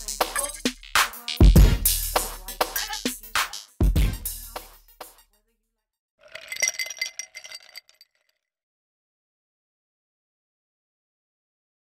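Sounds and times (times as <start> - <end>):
glassy clinks with ringing: 6.3 - 8.3.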